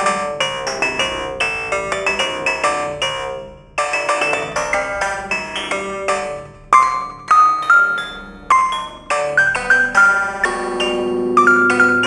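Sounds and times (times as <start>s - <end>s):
synth bell-like mallet notes: 0.0s - 12.0s.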